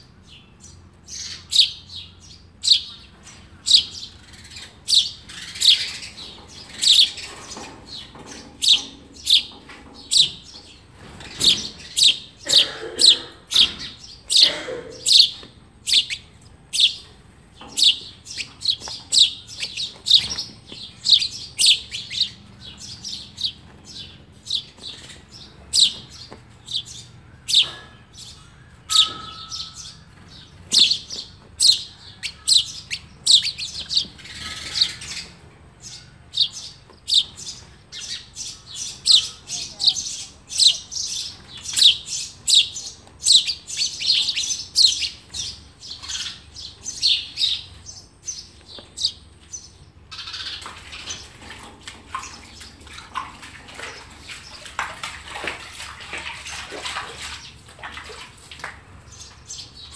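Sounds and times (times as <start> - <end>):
sparrow nestlings chirping: 0.2 - 51.4.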